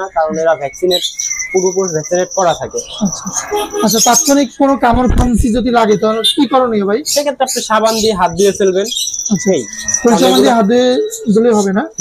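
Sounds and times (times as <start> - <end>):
high steady chirping: 0.0 - 4.9, 5.7 - 12.0
person talking: 1.9 - 8.9, 10.0 - 11.9.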